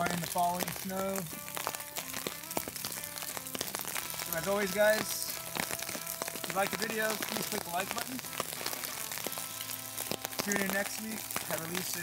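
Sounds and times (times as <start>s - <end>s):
rain pattering on tarp: 0.0s - 12.0s
wood fire crackling: 0.0s - 12.0s.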